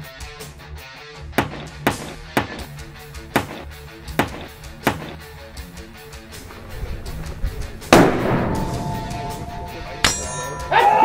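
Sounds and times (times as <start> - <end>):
background music: 0.0 - 11.0
sharp metallic clang: 8.3 - 11.0.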